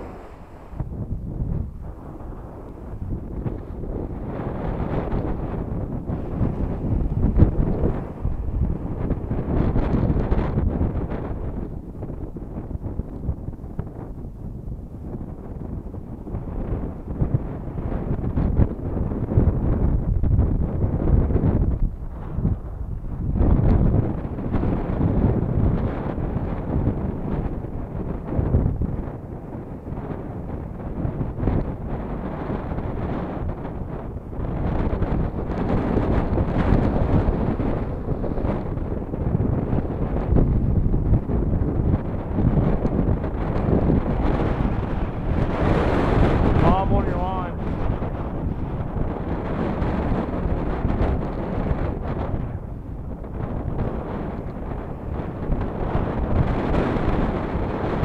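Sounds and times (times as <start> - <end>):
ocean surf breaking: 0.0 - 11.9
wind buffeting microphone: 0.0 - 58.0.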